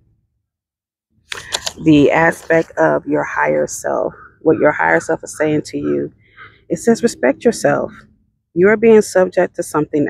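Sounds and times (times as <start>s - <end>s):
woman speaking: 1.4s - 6.1s, 6.7s - 8.0s, 8.6s - 10.0s.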